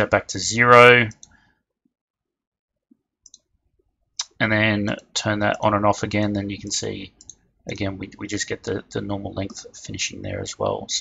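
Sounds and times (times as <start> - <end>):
computer mouse clicks: 3.2 - 3.5.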